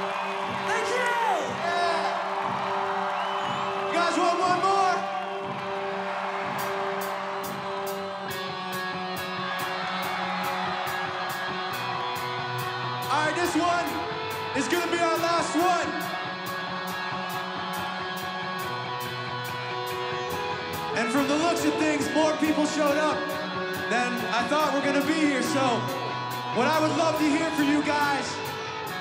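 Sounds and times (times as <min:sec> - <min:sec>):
crowd whooping and cheering: 0:00.0 - 0:29.0.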